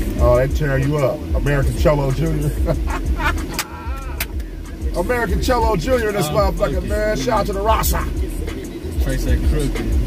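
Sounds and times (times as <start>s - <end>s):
car rumble: 0.0s - 10.0s
men laughing hard: 2.5s - 4.4s, 7.7s - 8.2s.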